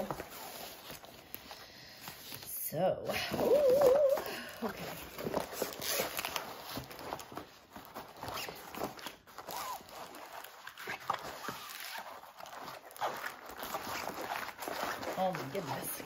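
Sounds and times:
paper and plastic rustling: 0.0 - 2.5, 3.1 - 16.0.

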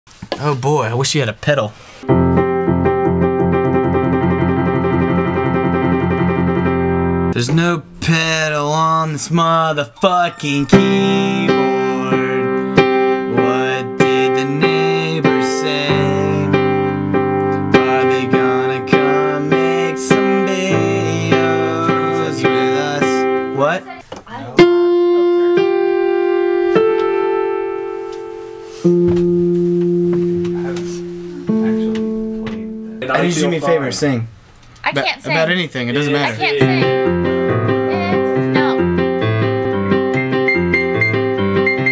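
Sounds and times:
electronic keyboard piano notes: 2.0 - 8.8, 9.9 - 24.0, 24.6 - 34.2, 36.4 - 41.9.

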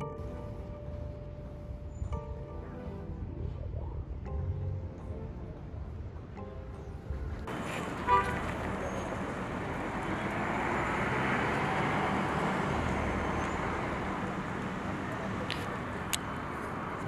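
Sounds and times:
outdoor traffic noise: 0.0 - 17.0
short car horn toot: 8.0 - 8.4.

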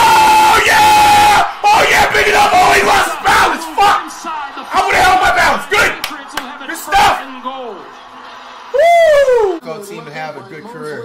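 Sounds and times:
man yelling excitedly: 0.0 - 7.4
stadium crowd cheering: 0.0 - 9.6.

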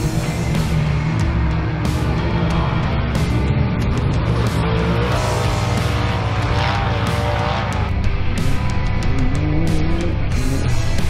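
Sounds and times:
race car engine revving: 0.0 - 11.0.

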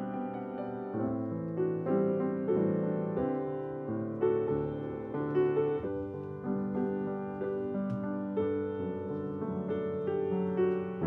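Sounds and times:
gentle piano music: 0.0 - 11.0.

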